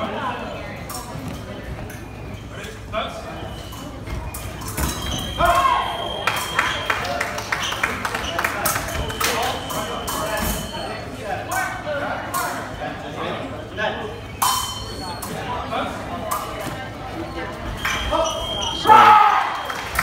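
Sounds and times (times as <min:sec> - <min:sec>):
background chatter: 0:00.0 - 0:20.0.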